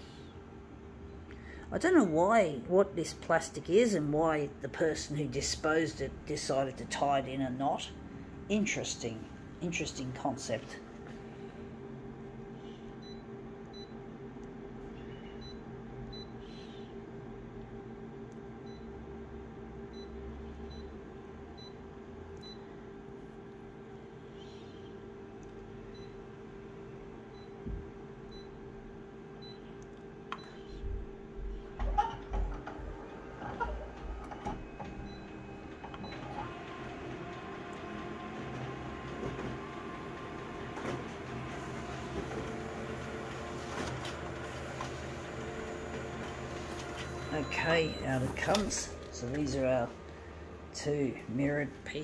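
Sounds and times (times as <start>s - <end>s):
steady low hum: 0.0s - 52.0s
touchscreen key beeps: 47.0s - 48.9s.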